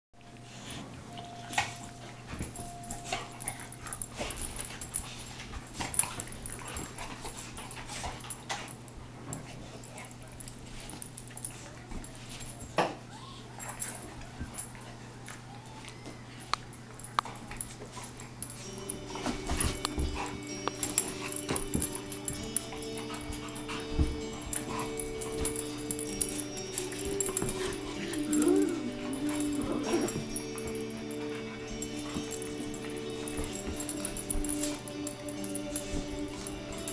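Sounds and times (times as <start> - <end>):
dogs play-wrestling: 0.2 - 36.9
scuffling: 15.9 - 36.9.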